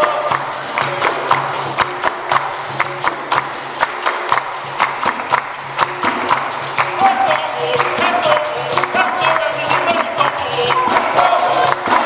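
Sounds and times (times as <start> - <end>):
hand drum: 0.0 - 12.0
people clapping in rhythm: 0.0 - 12.0.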